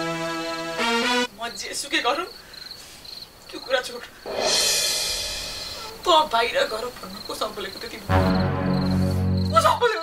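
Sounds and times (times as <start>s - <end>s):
held music chord: 0.0s - 1.3s, 8.1s - 9.8s
crickets chirping: 0.4s - 10.0s
loud rushing hiss: 4.2s - 6.5s.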